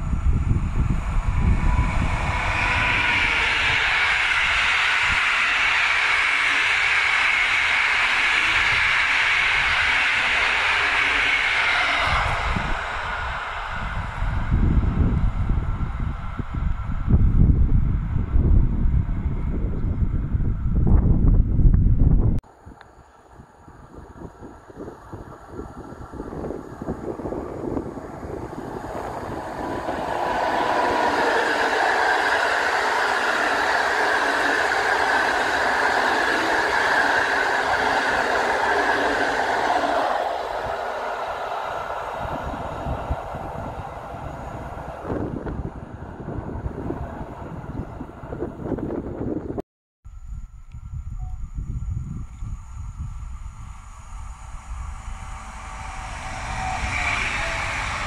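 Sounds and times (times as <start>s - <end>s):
passenger train passing: 0.0s - 49.6s, 50.8s - 58.0s
wind rumble on microphone: 0.0s - 58.0s.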